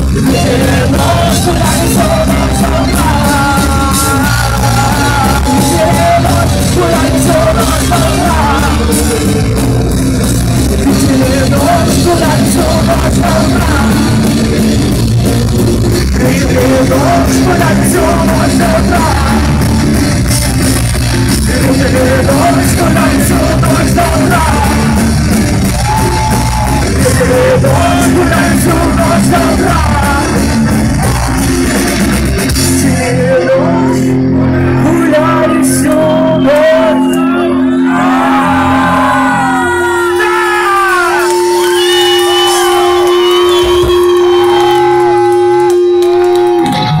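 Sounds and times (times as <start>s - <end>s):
person singing: 0.0s - 19.8s, 21.3s - 25.2s, 25.8s - 31.9s, 32.5s - 41.7s
rock band playing: 0.0s - 47.0s.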